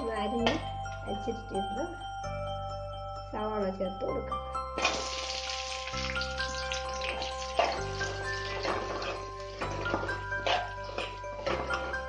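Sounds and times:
background music with chimes: 0.0s - 12.0s
onions sizzling in hot oil: 4.8s - 12.0s.

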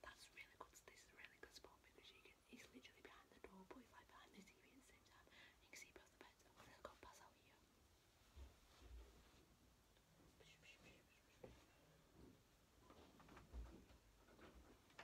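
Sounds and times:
woman whispering faintly: 0.0s - 7.6s, 10.3s - 11.8s.

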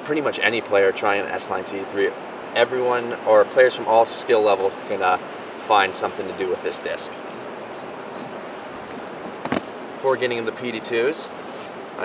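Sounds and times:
river water flowing: 0.3s - 12.0s.

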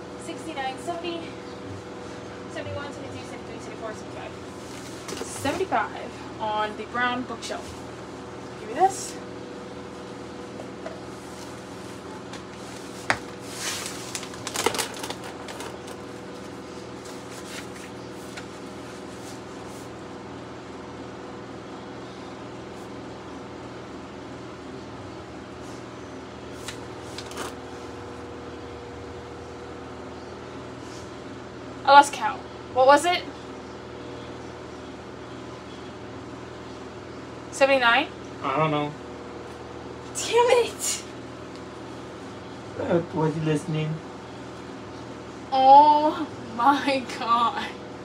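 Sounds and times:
room hum: 0.0s - 48.0s.

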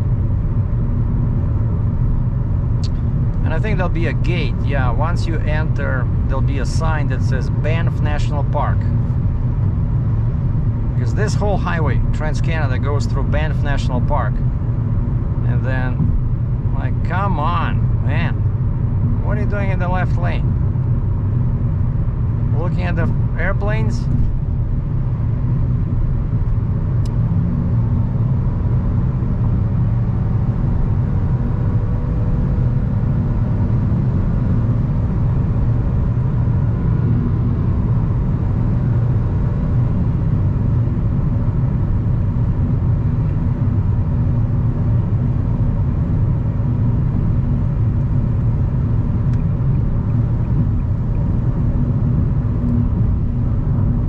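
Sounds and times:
car road and engine drone: 0.0s - 54.0s.

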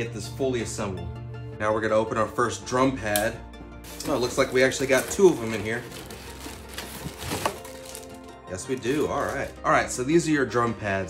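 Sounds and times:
cardboard box rustling and scraping: 3.9s - 9.5s
plastic wrapping rustling: 3.9s - 9.7s.

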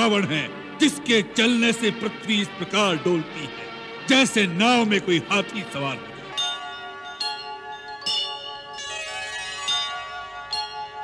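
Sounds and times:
bell-like chimes ringing: 6.2s - 11.0s.

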